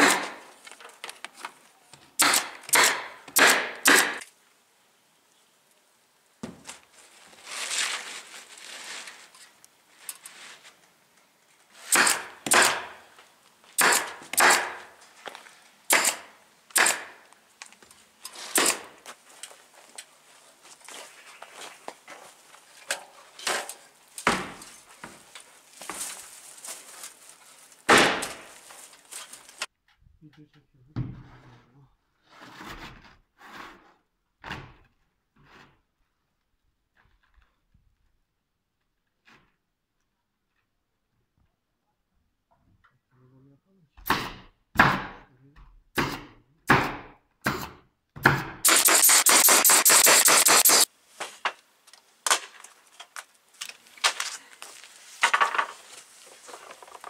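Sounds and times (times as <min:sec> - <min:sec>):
nail gun shots: 0:00.0 - 0:00.5, 0:02.2 - 0:04.3, 0:11.9 - 0:13.0, 0:13.8 - 0:14.9, 0:15.9 - 0:17.2, 0:18.6 - 0:19.0, 0:27.9 - 0:28.5, 0:44.0 - 0:45.2, 0:46.0 - 0:50.9.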